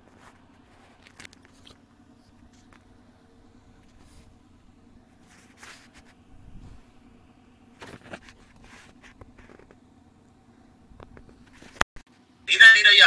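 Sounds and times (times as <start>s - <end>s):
soft clicks and rustles: 0.0s - 3.0s, 7.7s - 9.9s, 11.0s - 11.8s
low hum: 0.0s - 13.0s.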